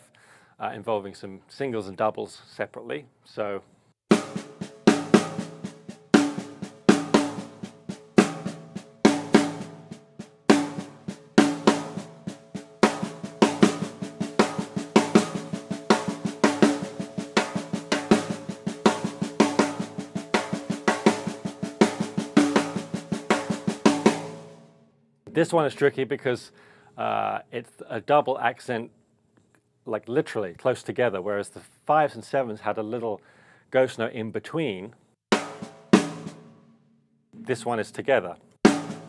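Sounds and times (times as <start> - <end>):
bass drum: 4.1 - 24.6, 35.4 - 36.7, 37.4 - 37.9, 38.7 - 39.0
foot-played hi-hat: 4.1 - 24.6
snare drum ghost notes and rim shots: 4.1 - 24.7, 35.3 - 36.8, 37.4 - 39.0.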